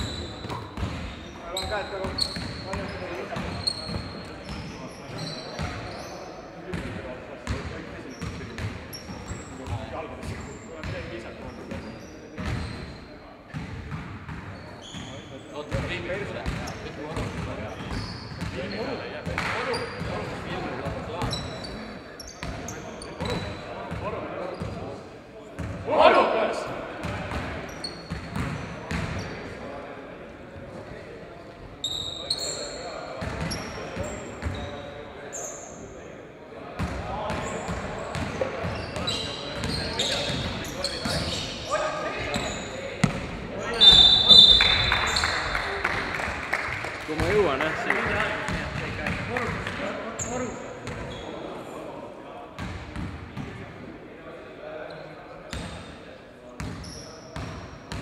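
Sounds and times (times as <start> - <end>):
sneaker squeaks: 0.0 - 6.8, 7.4 - 24.9, 27.6 - 29.5, 31.8 - 35.9, 36.8 - 45.6, 50.1 - 51.5, 54.9 - 56.0, 56.6 - 58.0
players' voices echoing: 0.0 - 58.0
basketballs bouncing on floor: 42.2 - 45.2.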